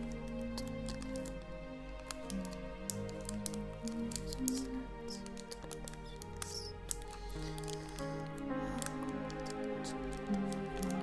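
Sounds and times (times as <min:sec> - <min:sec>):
slow soft piano music: 0:00.0 - 0:11.0
small crisp clicks and taps: 0:00.0 - 0:11.0.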